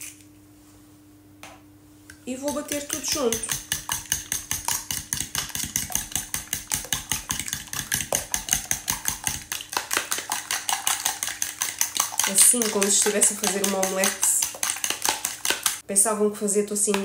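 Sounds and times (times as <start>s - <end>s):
fork beating eggs in bowl: 2.3s - 15.8s.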